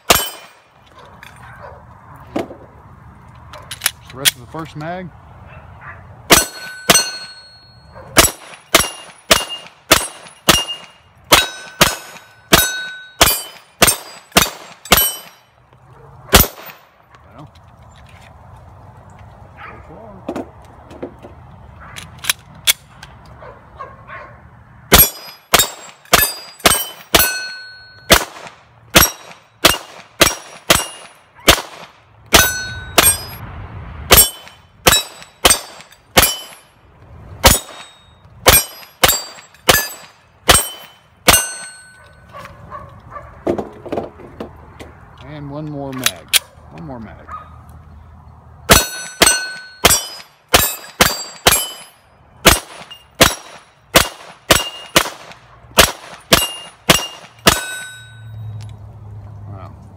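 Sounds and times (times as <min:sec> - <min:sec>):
pistol fire: 0:00.0 - 0:00.6, 0:06.3 - 0:07.4, 0:08.2 - 0:15.3, 0:16.3 - 0:16.8, 0:24.9 - 0:33.3, 0:34.1 - 0:36.6, 0:37.4 - 0:37.9, 0:38.5 - 0:41.7, 0:48.7 - 0:57.9
steel targets ringing when hit: 0:06.3 - 0:15.5, 0:24.9 - 0:28.2, 0:29.0 - 0:31.2, 0:32.3 - 0:33.4, 0:34.1 - 0:36.8, 0:37.5 - 0:42.2, 0:48.7 - 0:53.6, 0:56.3 - 0:58.6.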